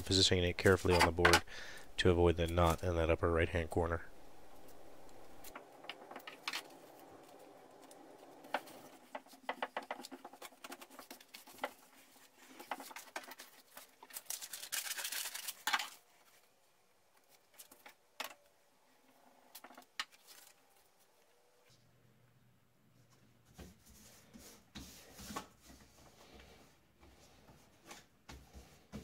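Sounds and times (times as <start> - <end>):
loud paper rustling: 5.2 - 16.4.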